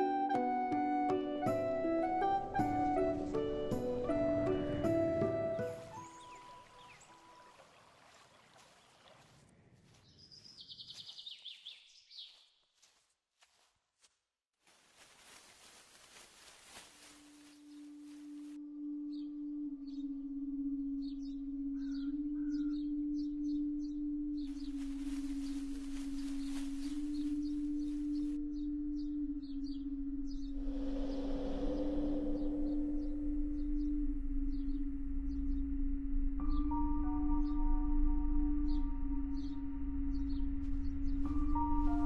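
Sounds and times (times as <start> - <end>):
bird chirps: 5.9 - 7.5, 10.0 - 12.6, 19.0 - 35.8
low wavering drone: 17.6 - 42.0
hissing rustling noise: 24.5 - 28.4
whoosh: 30.6 - 33.7.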